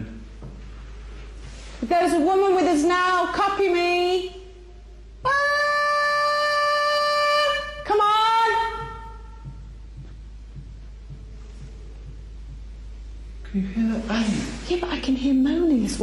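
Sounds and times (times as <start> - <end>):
woman singing long ahhh: 5.2 - 9.5.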